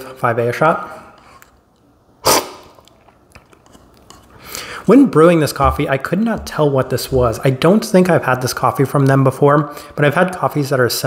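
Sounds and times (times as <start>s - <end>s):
loud coffee slurp: 2.2s - 2.8s.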